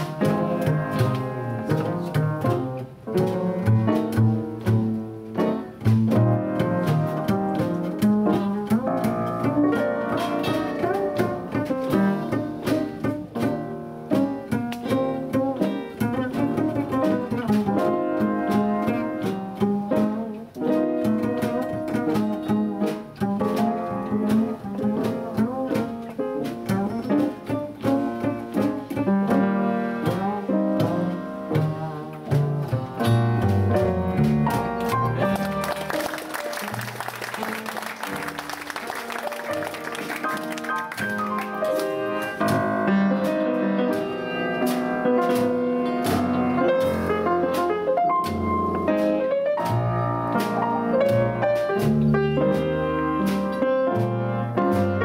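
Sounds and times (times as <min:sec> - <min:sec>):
double bass plucked: 0:00.0 - 0:55.0.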